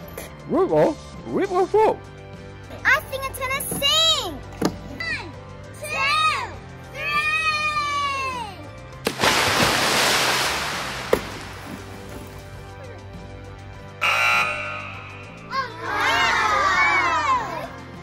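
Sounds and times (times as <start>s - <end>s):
background music: 0.0s - 18.0s
helmet splashing into water: 9.0s - 12.6s.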